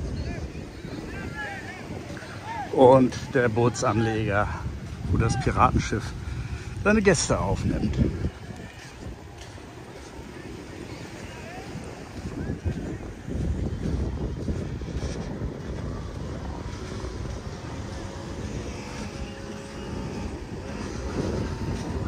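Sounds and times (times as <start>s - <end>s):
faint voices: 0.0s - 22.0s
wind buffeting microphone: 0.0s - 22.0s.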